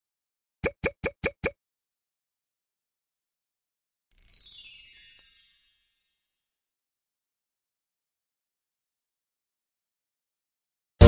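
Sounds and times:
cartoon plop sound effects: 0.6 - 1.6.

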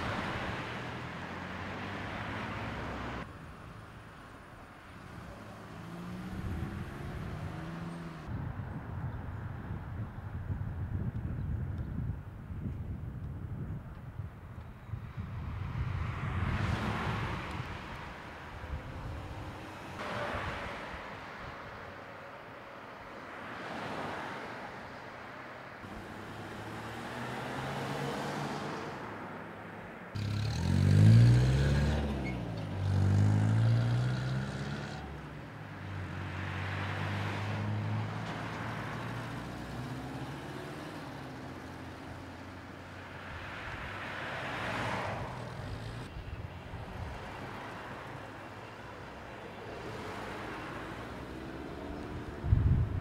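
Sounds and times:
cars passing: 0.0 - 10.2, 14.7 - 53.0
vehicle accelerating close by: 5.1 - 8.3, 30.2 - 42.6.

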